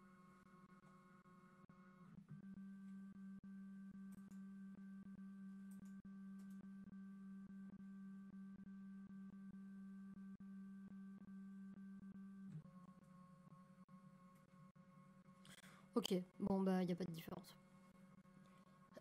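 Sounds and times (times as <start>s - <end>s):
scanner motor hum and whine: 0.0s - 19.0s.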